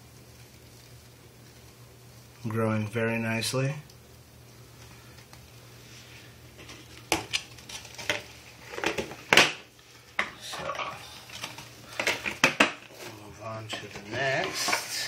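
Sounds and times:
plastic cups clicking on tile floor: 0:11.4 - 0:12.9.

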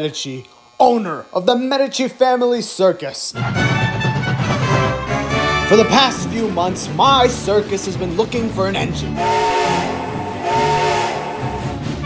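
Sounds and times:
steam hissing: 0:06.4 - 0:11.8
steam locomotive whistle: 0:09.1 - 0:12.0.

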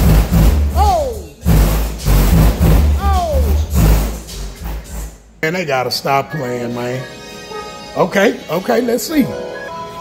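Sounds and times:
heavy bass pulsing: 0:00.0 - 0:05.2
song through car audio system: 0:00.0 - 0:05.4, 0:06.0 - 0:10.0.

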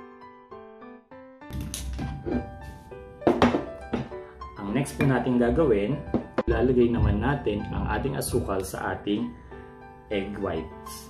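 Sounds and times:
soft piano music: 0:00.0 - 0:11.0
glass bowls knocking on table: 0:03.2 - 0:04.1, 0:06.1 - 0:06.5.

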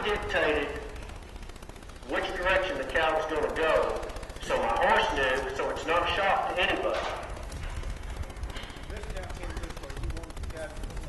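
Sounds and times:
rapid recording crackle: 0:02.0 - 0:11.0.

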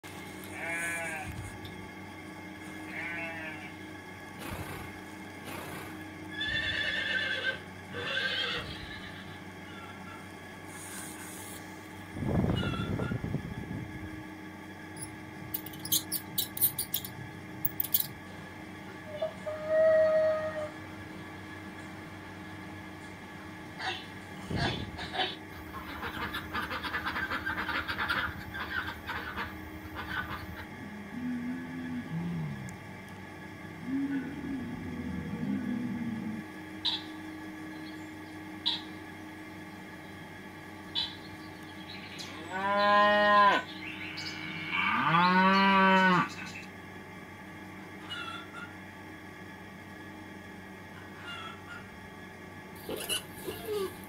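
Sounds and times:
sheep bleating: 0:00.4 - 0:01.4, 0:02.8 - 0:03.8
loud low animal call: 0:19.0 - 0:20.8, 0:23.8 - 0:33.0, 0:33.6 - 0:37.2.

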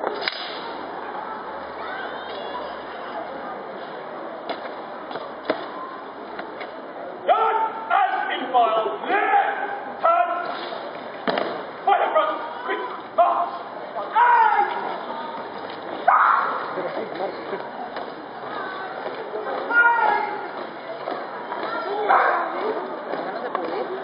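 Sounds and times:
person shouting military commands: 0:07.3 - 0:10.5, 0:11.8 - 0:15.0, 0:19.7 - 0:20.5.

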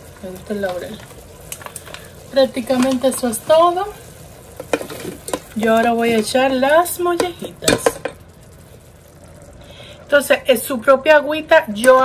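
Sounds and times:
sauce sizzling in a pot: 0:00.0 - 0:11.9.

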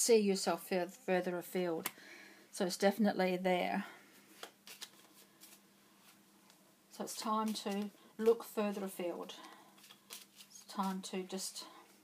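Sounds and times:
faint clicks of cards being handled: 0:04.3 - 0:06.6, 0:09.4 - 0:11.0.

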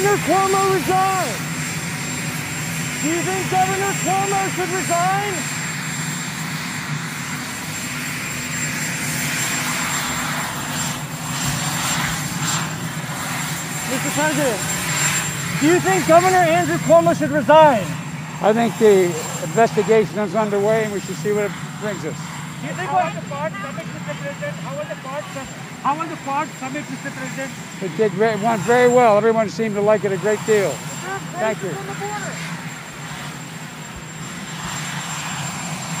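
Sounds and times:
helicopter turbine engines idling: 0:00.0 - 0:36.0.

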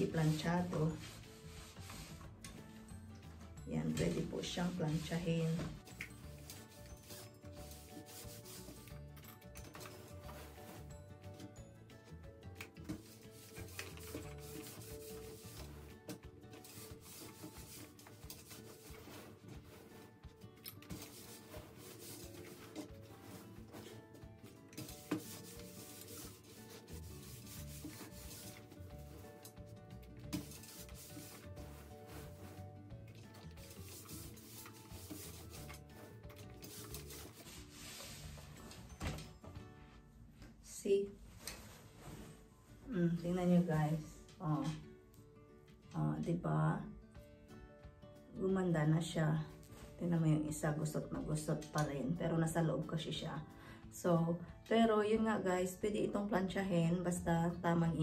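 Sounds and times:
iron rubbing over fabric: 0:00.0 - 0:02.4, 0:03.8 - 0:09.1, 0:09.8 - 0:11.0, 0:12.9 - 0:38.6
fabric rustling: 0:12.9 - 0:29.5, 0:41.2 - 0:43.0.

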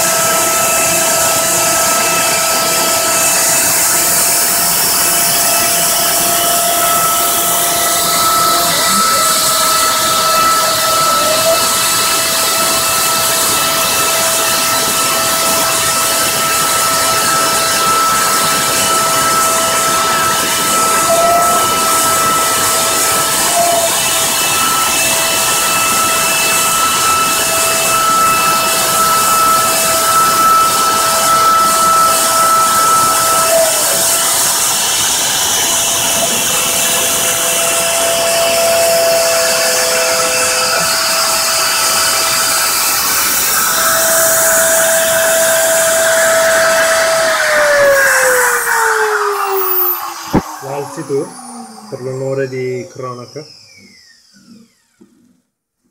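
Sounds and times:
router spindle high whine: 0:00.0 - 0:55.6.

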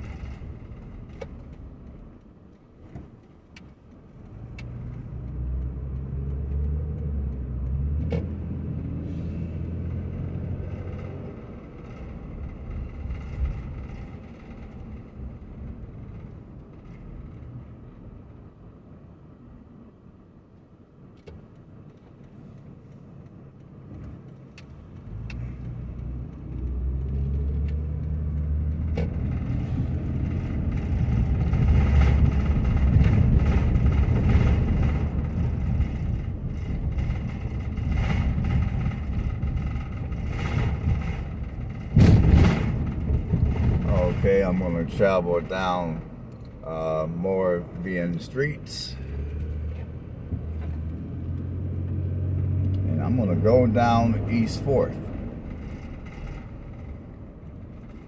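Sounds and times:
car engine from inside cabin: 0:00.0 - 0:58.0
road noise: 0:00.0 - 0:58.0.

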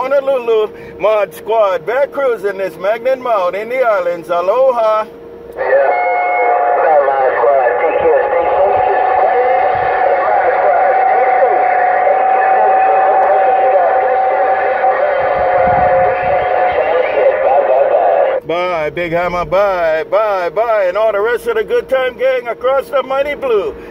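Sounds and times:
steady radio whistle: 0:05.5 - 0:23.9
garbled radio voice: 0:05.6 - 0:23.8.

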